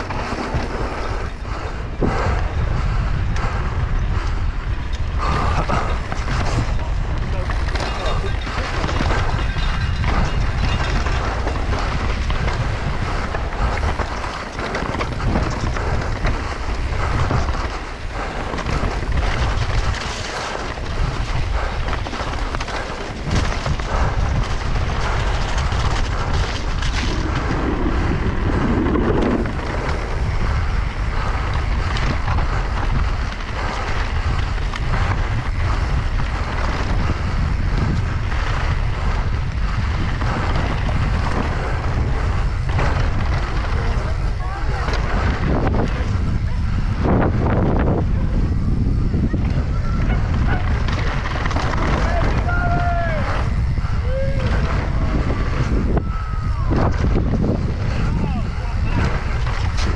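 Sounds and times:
bike clattering over bumps: 0.0 - 59.9
tyres on dirt and stones: 0.0 - 59.9
wind buffeting microphone: 0.0 - 59.9.

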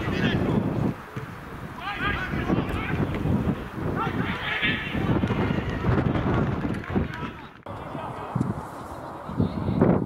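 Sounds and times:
players calling out: 0.0 - 6.0
wind rumbling on microphone: 0.0 - 10.0.

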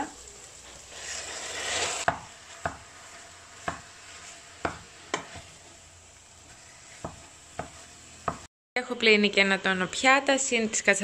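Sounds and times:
meat sizzling in a pot: 0.0 - 8.5.

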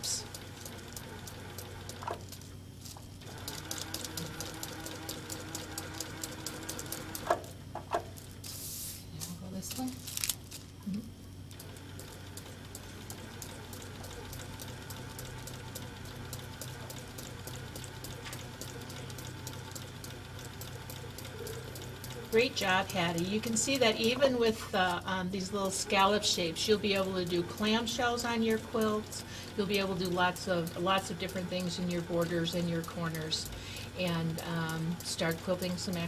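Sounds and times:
sewing machine motor hum: 0.0 - 8.5, 10.4 - 36.0
needle ticks: 26.6 - 36.0.

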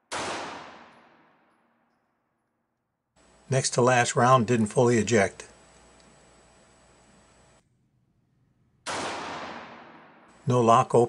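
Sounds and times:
pistol shot: 0.0 - 1.9, 8.8 - 10.4.

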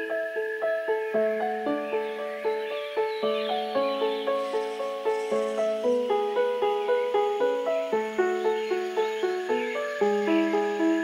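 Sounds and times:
faint birdsong: 0.0 - 11.0
gentle piano melody: 0.0 - 11.0.

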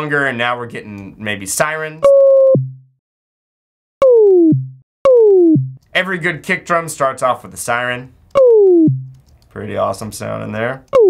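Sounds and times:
synth kick with downward glide: 2.4 - 2.9, 4.0 - 5.8, 8.4 - 9.2.

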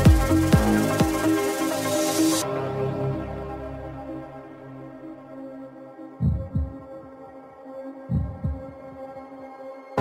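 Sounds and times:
synth pad chords: 0.0 - 10.0
deep bass thumps: 6.2 - 6.8, 8.1 - 8.8.

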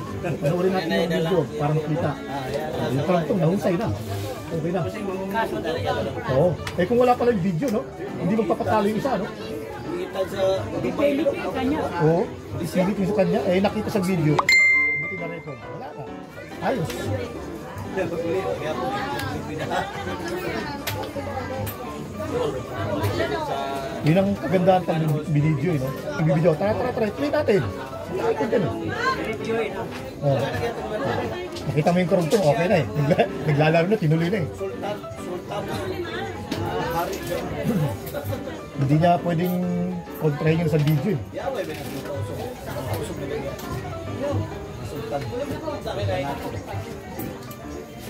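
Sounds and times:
music playing: 0.0 - 48.0
overlapping chatter of voices: 0.0 - 48.0
people talking casually: 0.0 - 48.0.

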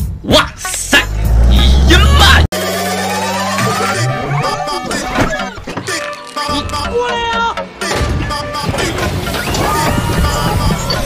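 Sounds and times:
deep car engine rumble: 0.8 - 2.5.

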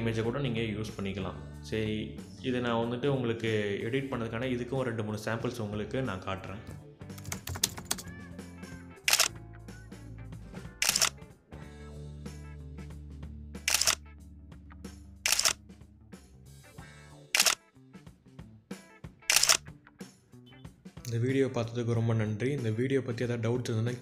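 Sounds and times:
background music: 0.0 - 24.0
camera shutter clicks: 9.1 - 9.3, 10.8 - 11.2, 13.7 - 14.0, 15.3 - 15.6, 17.4 - 17.6, 19.3 - 19.6.

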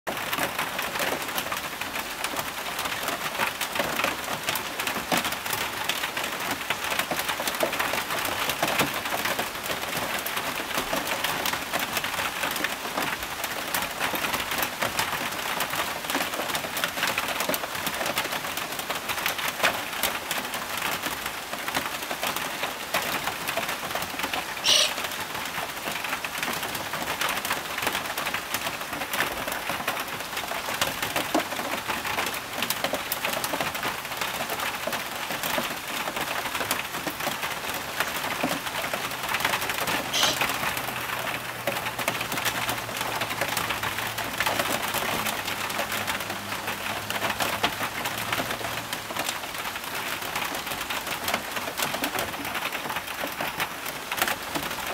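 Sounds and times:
steady rain falling: 0.1 - 54.9
brief high-pitched sound: 24.6 - 25.0, 40.1 - 40.4.

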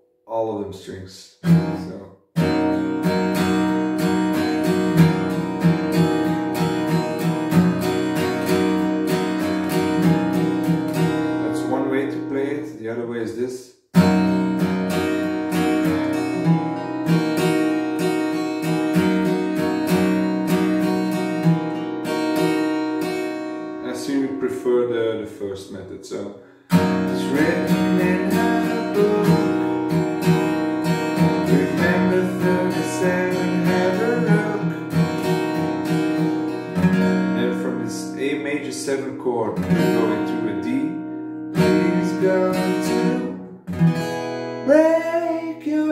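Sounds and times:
acoustic guitar strumming: 1.4 - 13.0, 13.9 - 25.3, 26.4 - 45.9.

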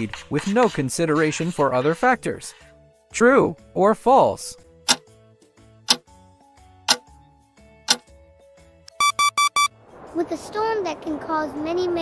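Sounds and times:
soft background music: 0.0 - 12.0
countdown timer ticking: 8.9 - 9.7
electronic alarm beeps: 8.9 - 9.7.

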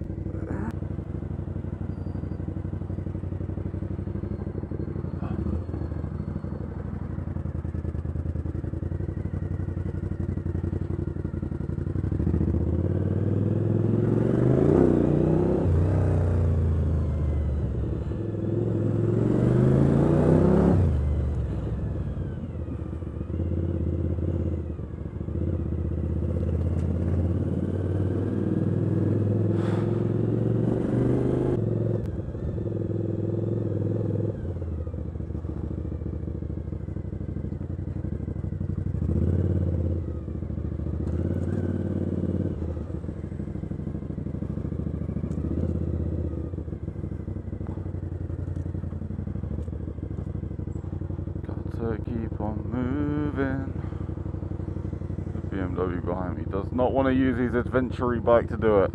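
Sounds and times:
motorcycle engine accelerating: 0.0 - 58.9.

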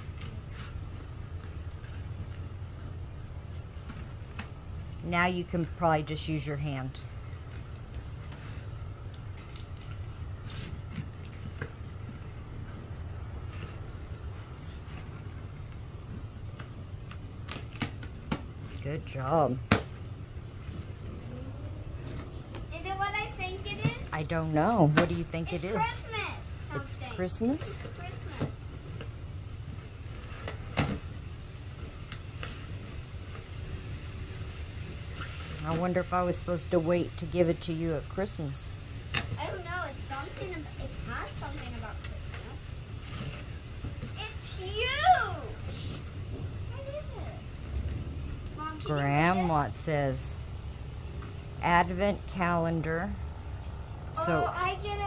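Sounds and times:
low background rumble: 0.0 - 55.0.

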